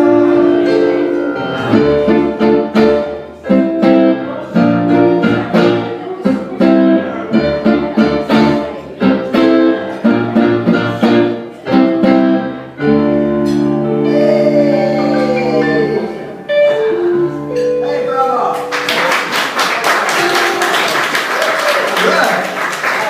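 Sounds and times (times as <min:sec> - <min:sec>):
guitar playing rhythmic chords: 0:00.0 - 0:19.3, 0:20.1 - 0:21.2.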